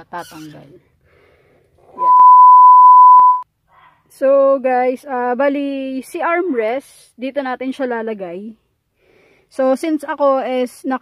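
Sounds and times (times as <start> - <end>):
steady test tone beep: 2.0 - 3.4.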